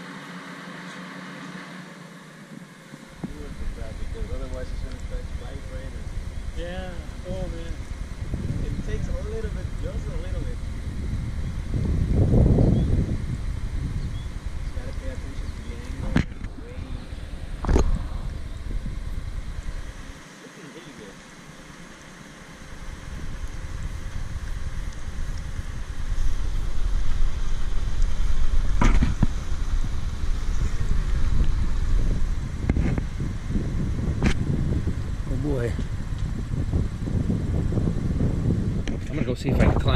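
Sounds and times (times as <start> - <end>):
crane engine running: 0.0 - 39.9
wind rumbling on microphone: 2.6 - 20.2, 22.5 - 39.9
faint voices: 3.0 - 10.8, 14.4 - 21.4.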